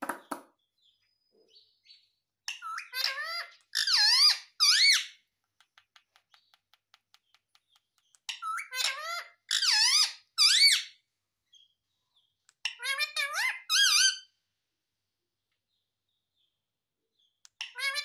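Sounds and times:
parrot calling: 2.5s - 5.2s, 8.4s - 11.0s, 17.6s - 18.0s.

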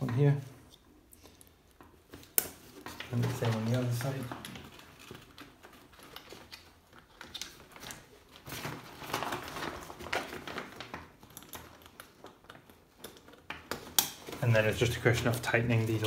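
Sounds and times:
fabric and straps rustling: 0.9s - 16.0s.

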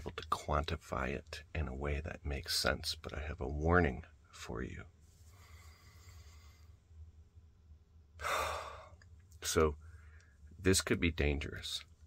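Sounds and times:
faint low hum: 0.0s - 12.0s
man sighing: 8.2s - 9.0s.

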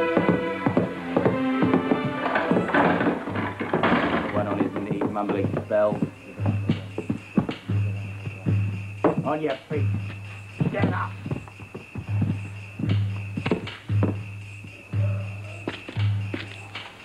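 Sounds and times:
film score with held chords: 0.0s - 10.5s
sharp knocks: 0.2s - 7.8s.

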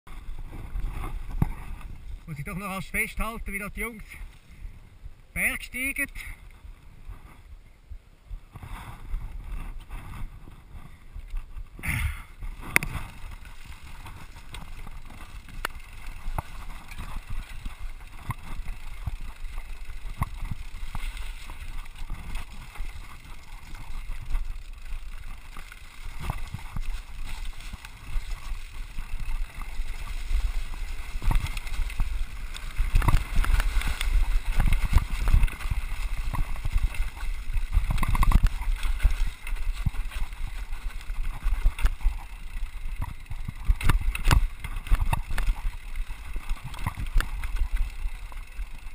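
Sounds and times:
wind rumbling on microphone: 0.1s - 2.4s, 6.4s - 48.9s
mountain bike rattling on dirt trail: 0.1s - 48.9s.

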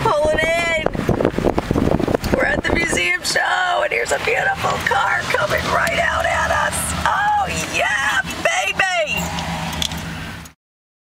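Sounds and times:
car engine running low: 0.0s - 10.5s
voices exclaiming: 2.8s - 9.4s.

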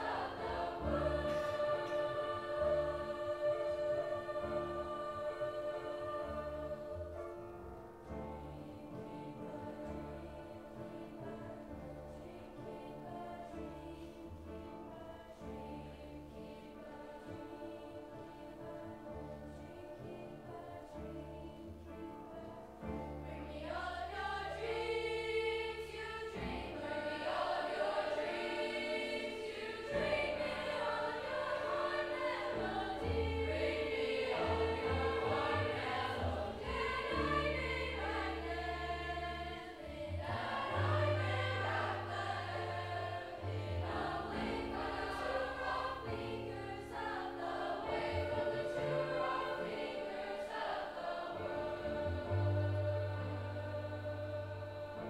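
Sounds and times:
youth choir singing: 0.0s - 7.5s, 8.1s - 55.0s.

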